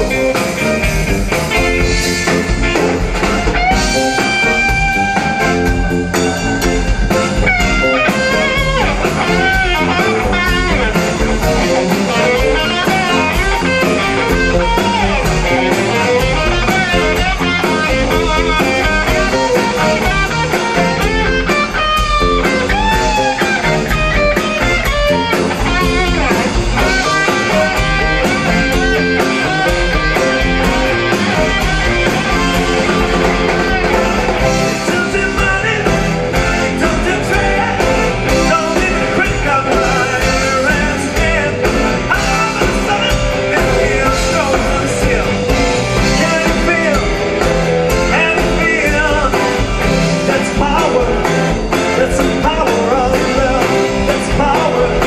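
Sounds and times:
bass guitar: 0.0 - 55.0
drums: 0.0 - 55.0
electric guitar lead: 0.0 - 55.0
organ: 0.0 - 55.0.

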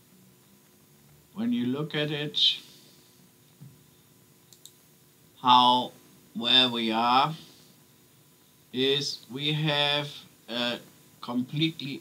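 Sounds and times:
computer mouse clicks: 4.5 - 4.8.

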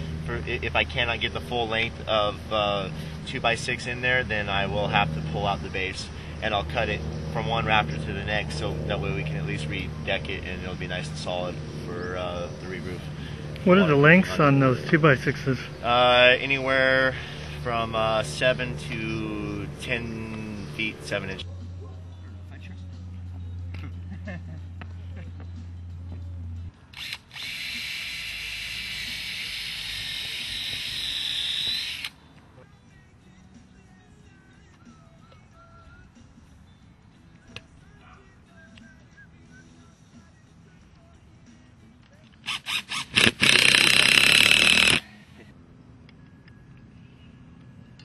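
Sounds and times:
power drill running: 27.0 - 32.2, 42.4 - 45.1.

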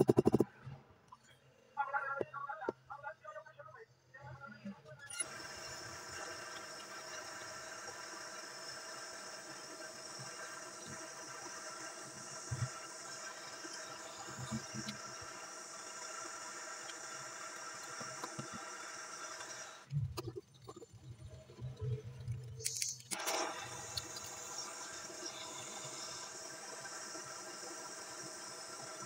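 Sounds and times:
gas torch flame hissing: 5.2 - 20.3, 22.6 - 29.0.

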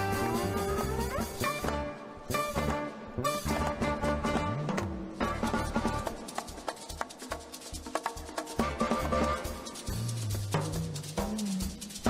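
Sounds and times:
soprano saxophone sliding notes: 0.0 - 4.6.

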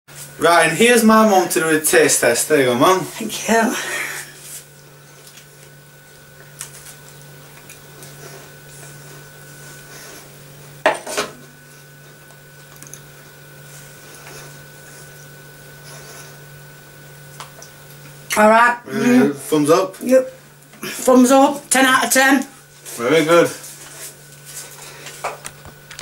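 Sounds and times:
low electrical hum: 0.1 - 26.0.

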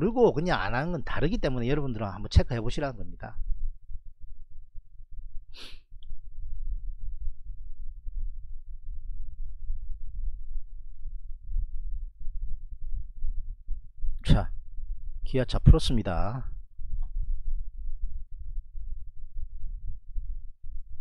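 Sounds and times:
steady low rumble: 0.0 - 21.0
sharp breath at microphone: 5.5 - 6.0.

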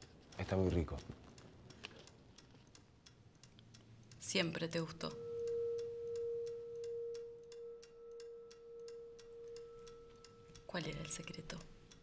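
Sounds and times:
steady ticking: 0.0 - 12.0
sustained ringing tone: 5.0 - 11.6.

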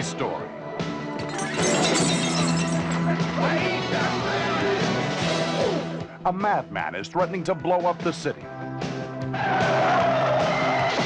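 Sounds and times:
background music: 0.0 - 11.0
tyres squealing in a skid: 9.3 - 11.0.

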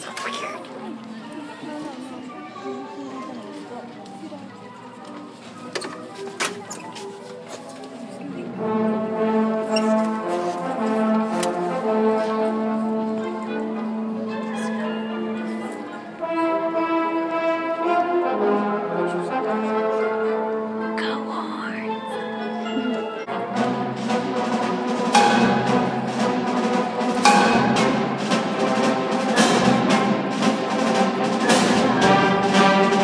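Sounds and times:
murmuring audience chatter: 0.0 - 33.0
concert band playing brass chords: 8.5 - 14.6, 16.2 - 20.8, 22.6 - 33.0.

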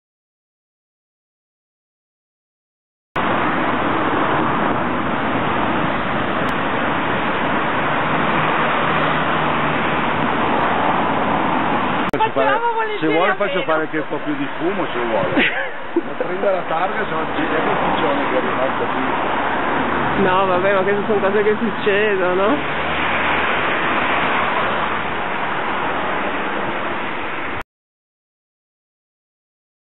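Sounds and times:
street traffic: 3.2 - 27.6.

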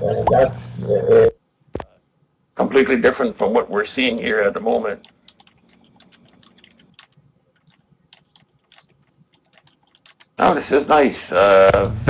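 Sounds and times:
computer keyboard clicking: 5.0 - 10.4.

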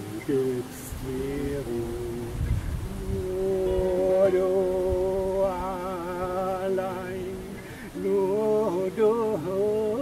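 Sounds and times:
acoustic guitar: 0.0 - 10.0
man singing wordless notes: 0.0 - 10.0.

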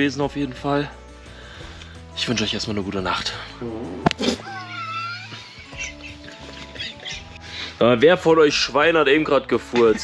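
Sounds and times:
soft background music: 0.0 - 10.0
person farting: 3.6 - 5.2.

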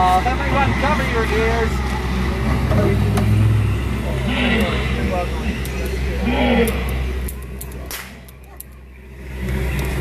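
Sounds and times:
boat motor humming: 0.0 - 10.0
pistol shot: 7.9 - 8.2.

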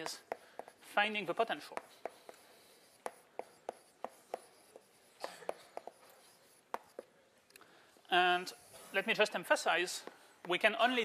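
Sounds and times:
chalk writing on blackboard: 0.0 - 7.2, 8.1 - 10.7.

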